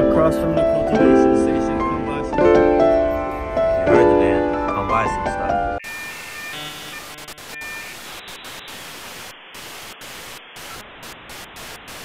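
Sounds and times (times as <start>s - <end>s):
short electronic tones: 5.8s - 10.9s
static hiss: 5.8s - 12.0s.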